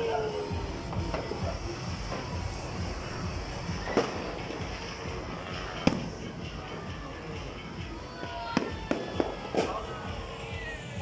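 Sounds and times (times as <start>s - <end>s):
fireworks and firecrackers banging: 0.0s - 11.0s
steady background din: 0.0s - 11.0s.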